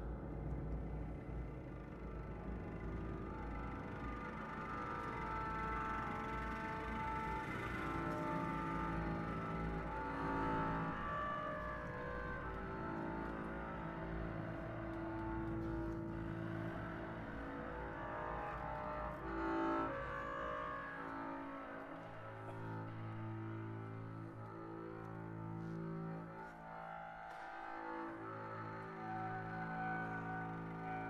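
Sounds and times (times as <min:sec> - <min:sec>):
bowed double bass: 0:00.0 - 0:31.0
clarinet: 0:00.0 - 0:31.0
viola: 0:00.0 - 0:31.0.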